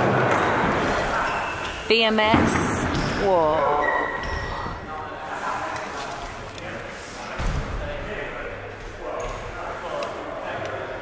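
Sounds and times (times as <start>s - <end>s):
people talking echoing: 0.0s - 11.0s.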